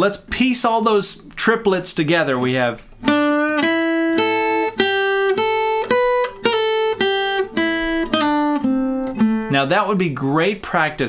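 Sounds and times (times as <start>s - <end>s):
acoustic guitar blues lick: 2.1s - 11.0s.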